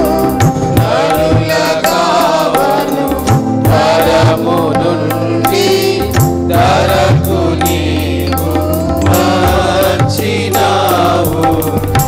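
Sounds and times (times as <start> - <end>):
drum strokes: 0.0 - 12.0
group singing a hymn: 0.0 - 12.0.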